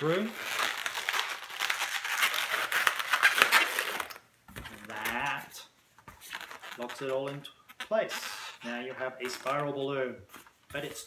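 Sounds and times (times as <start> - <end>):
balloons squeaking and rubbing: 0.0 - 11.0.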